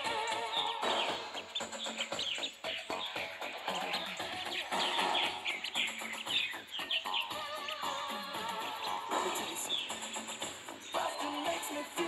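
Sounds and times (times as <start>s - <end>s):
duckling peeping: 0.0s - 12.0s
music playing: 0.0s - 12.0s.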